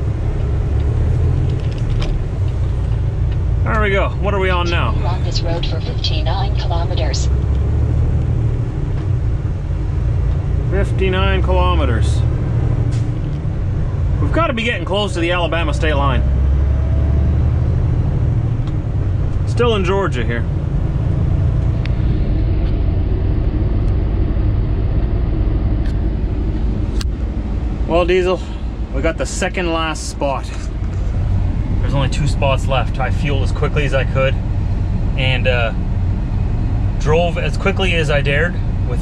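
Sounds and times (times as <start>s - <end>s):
road noise: 0.0s - 39.0s
truck diesel engine: 0.0s - 39.0s.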